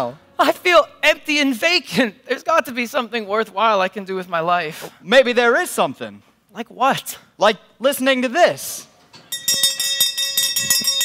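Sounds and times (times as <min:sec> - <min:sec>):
bell rung rapidly: 0:09.3 - 0:11.0.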